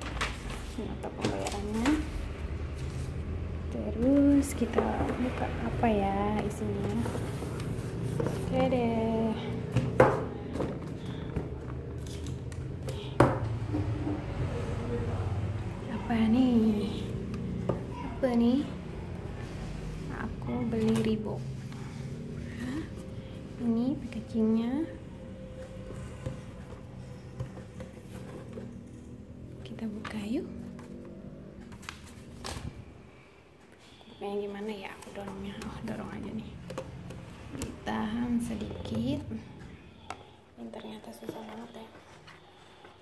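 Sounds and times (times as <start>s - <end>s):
paper and cardboard rustling: 0.0s - 3.4s, 6.4s - 9.0s.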